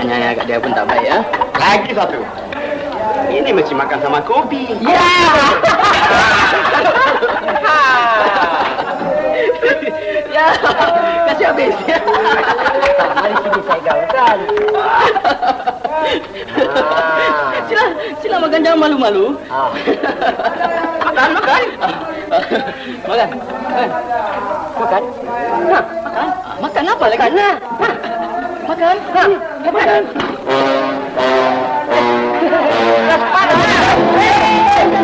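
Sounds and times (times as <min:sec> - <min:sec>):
men talking: 0:00.0 - 0:35.0
men chuckling: 0:05.5 - 0:18.2, 0:19.5 - 0:24.0
brass held chords: 0:30.4 - 0:35.0.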